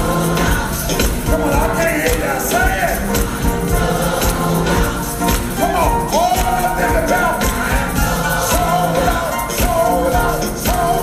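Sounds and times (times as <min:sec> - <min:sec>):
gospel choir with instruments: 0:00.0 - 0:11.0
hand claps: 0:01.0 - 0:03.5, 0:04.2 - 0:11.0.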